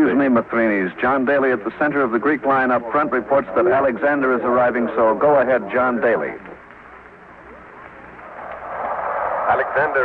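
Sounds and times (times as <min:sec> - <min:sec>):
rushing radio background noise: 0:00.0 - 0:10.0.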